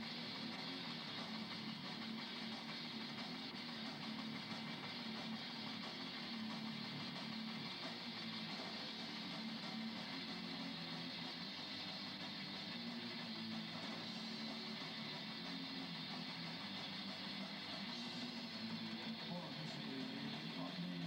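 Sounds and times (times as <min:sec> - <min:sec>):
electric guitar: 0:00.0 - 0:21.0.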